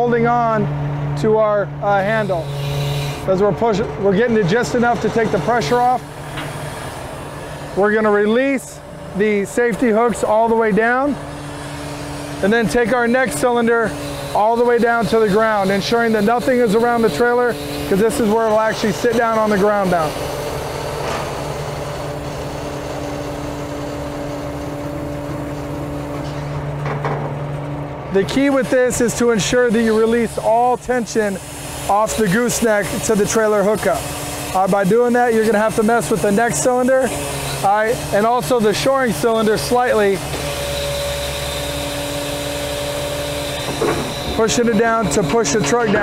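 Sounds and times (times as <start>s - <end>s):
truck engine with hydraulic pump: 0.0s - 46.0s.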